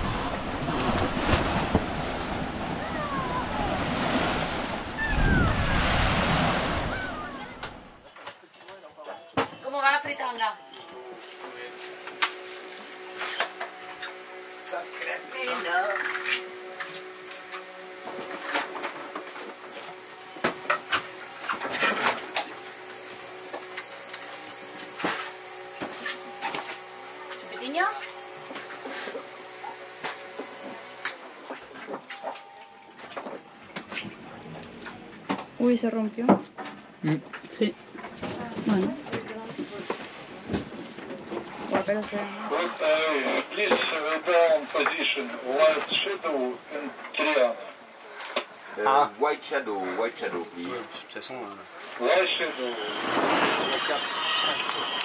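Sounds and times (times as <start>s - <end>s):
water splashing past a hull: 0.0s - 8.0s
wind: 0.0s - 55.0s.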